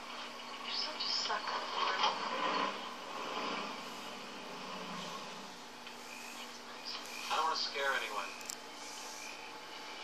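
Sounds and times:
car engine through television speaker: 0:00.2 - 0:08.4.

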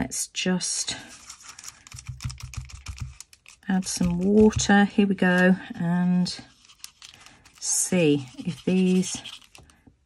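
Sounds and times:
plastic pen clicks and taps: 0:01.9 - 0:04.8.

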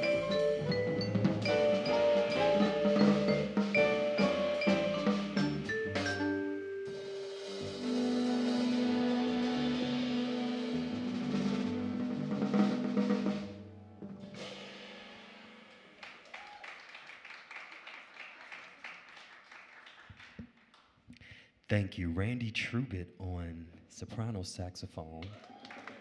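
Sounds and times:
jazz band holding final chord: 0:00.0 - 0:15.8
drum roll: 0:00.0 - 0:16.6.

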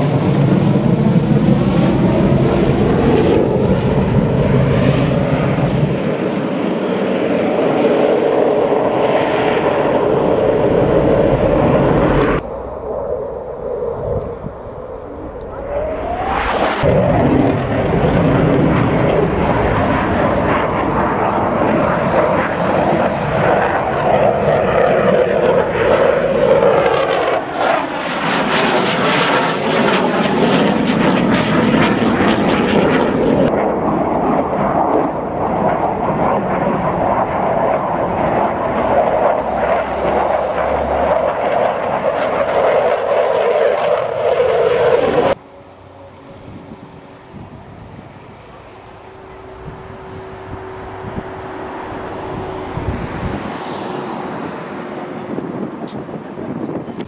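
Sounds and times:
jet passing with rising whine: 0:00.0 - 0:56.8
jet engines rumbling overhead: 0:00.0 - 0:57.0.

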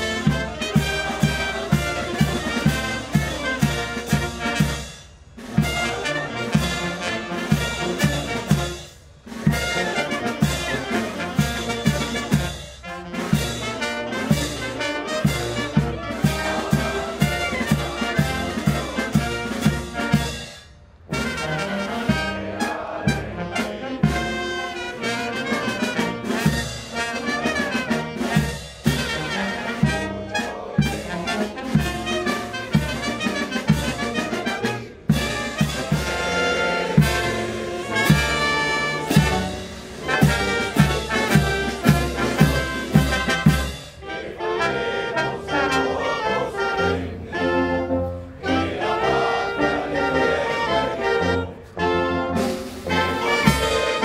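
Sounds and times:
brass band playing a march: 0:00.0 - 0:54.0
bass drum beat: 0:35.2 - 0:43.6.

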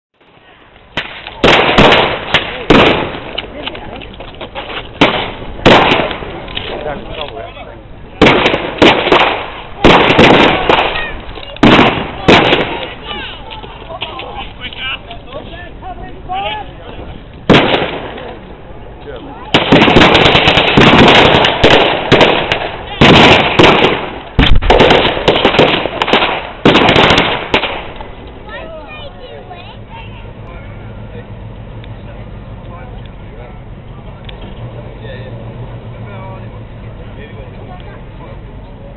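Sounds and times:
sharp crack: 0:00.2 - 0:07.4, 0:08.2 - 0:15.2, 0:17.3 - 0:18.6, 0:19.5 - 0:28.5
loud bangs: 0:00.9 - 0:03.8, 0:04.4 - 0:07.3, 0:08.1 - 0:13.4, 0:16.9 - 0:18.7, 0:19.5 - 0:28.7.

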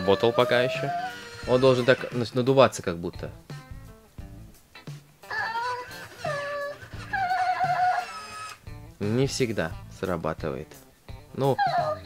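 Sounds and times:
toy electronic babbling: 0:00.0 - 0:02.3, 0:05.3 - 0:08.6.

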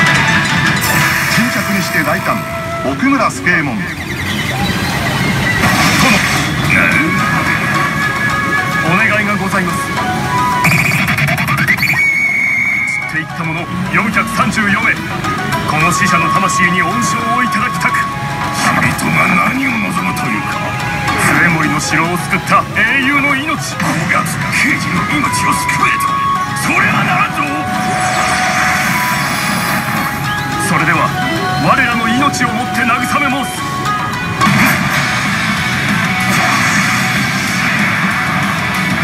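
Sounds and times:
pachinko machine electronic effects: 0:00.0 - 0:39.0
steady background drone: 0:00.0 - 0:39.0.

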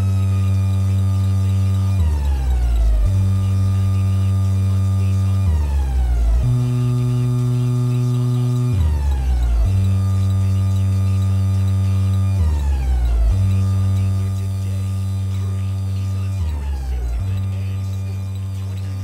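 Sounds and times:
low electronic drone: 0:00.0 - 0:19.0.

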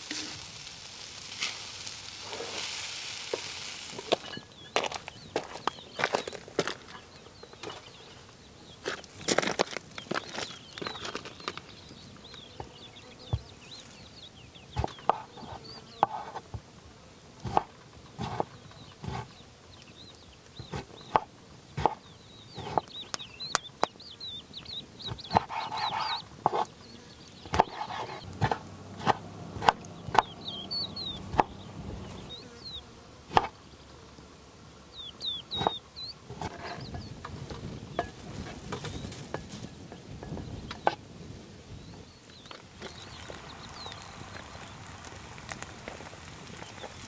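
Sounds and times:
small birds chirping: 0:00.0 - 0:47.0.

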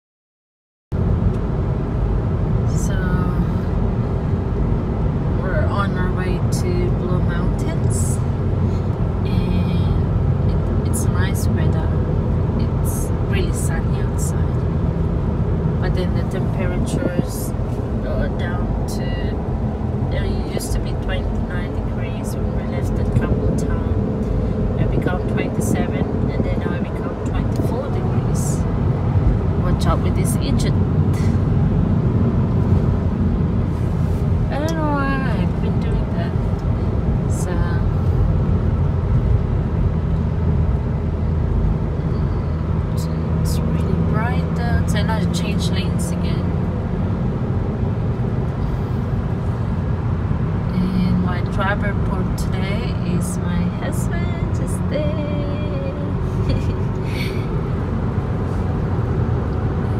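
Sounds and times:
car road and engine noise: 0:00.9 - 0:59.9
voices: 0:02.7 - 0:03.6, 0:05.4 - 0:08.2, 0:09.2 - 0:14.6, 0:15.8 - 0:19.4, 0:20.1 - 0:24.1, 0:24.8 - 0:28.6, 0:29.6 - 0:31.4, 0:34.5 - 0:36.4, 0:37.3 - 0:38.0, 0:42.1 - 0:46.6, 0:50.7 - 0:57.5.

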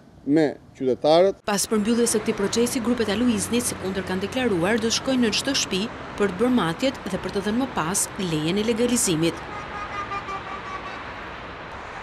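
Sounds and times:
distant road traffic: 0:00.0 - 0:12.0.

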